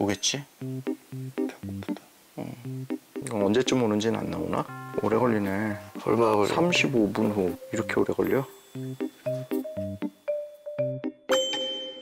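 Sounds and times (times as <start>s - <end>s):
playful plucked music: 2.7s - 12.0s
bell-like ding ringing: 11.3s - 12.0s.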